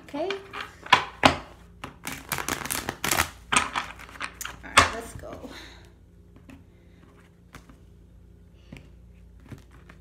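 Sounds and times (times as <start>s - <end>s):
cards being shuffled: 1.8s - 4.6s, 8.6s - 10.0s.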